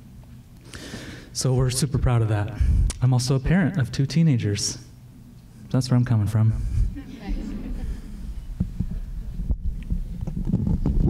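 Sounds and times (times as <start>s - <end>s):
microphone handling rumbles and thuds: 2.0s - 3.0s, 6.6s - 11.0s.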